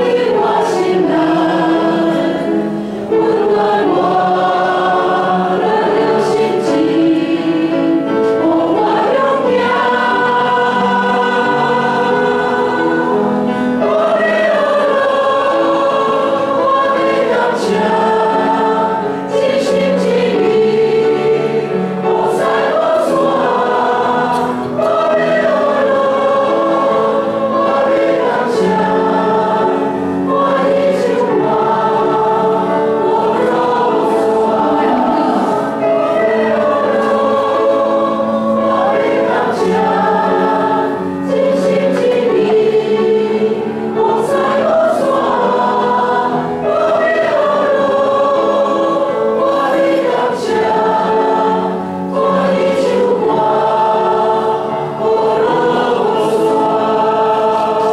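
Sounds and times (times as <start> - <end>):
congregation singing a hymn: 0.0 - 57.9
piano accompaniment: 0.0 - 57.9.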